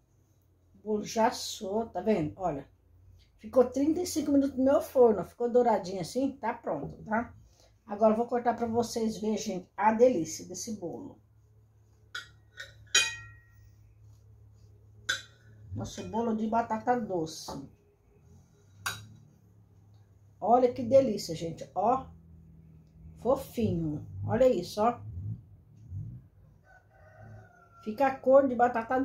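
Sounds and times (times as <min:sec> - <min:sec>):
knife clinking against china plate: 0:12.2 - 0:13.5
faint rooster crowing: 0:26.4 - 0:28.3.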